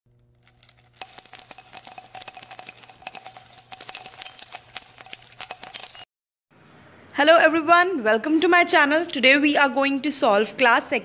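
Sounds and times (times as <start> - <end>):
bell jingle: 0.3 - 6.1.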